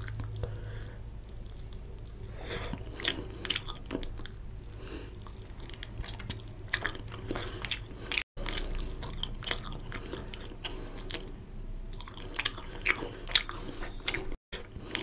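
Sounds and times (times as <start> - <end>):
close chewing: 0.0 - 15.0.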